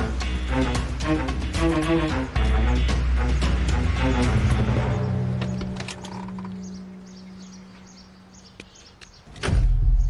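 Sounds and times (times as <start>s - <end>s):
background music: 0.0s - 8.6s
off-road vehicle engine rumble: 0.0s - 10.0s.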